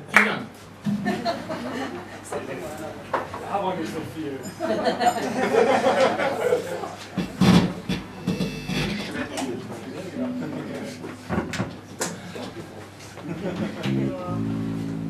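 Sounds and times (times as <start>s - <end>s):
knocks and clicks from instruments: 7.2s - 9.2s, 10.2s - 12.2s
band playing: 7.2s - 9.4s, 10.2s - 12.0s, 13.4s - 15.0s
short held instrument note: 10.2s - 11.7s.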